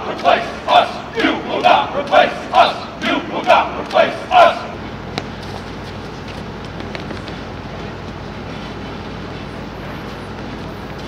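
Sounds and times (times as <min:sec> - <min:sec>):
low traffic hum: 0:00.0 - 0:11.0.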